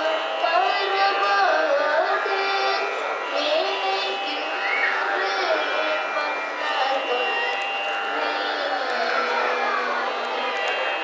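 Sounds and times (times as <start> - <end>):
boy singing into microphone: 0.0 - 10.9
steady drone: 0.0 - 11.0.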